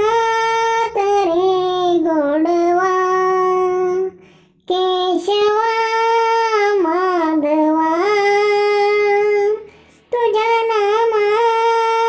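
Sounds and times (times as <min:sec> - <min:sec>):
child singing a prayer: 0:00.0 - 0:12.0.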